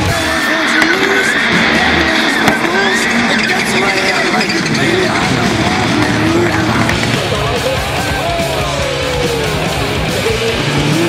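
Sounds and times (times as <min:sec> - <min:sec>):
loud music: 0:00.0 - 0:11.0
race car engines revving: 0:00.0 - 0:11.0
tyre noise: 0:00.0 - 0:11.0.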